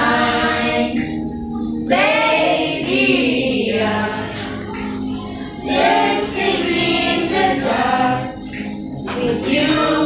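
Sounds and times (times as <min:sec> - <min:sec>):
children singing: 0:00.0 - 0:10.0.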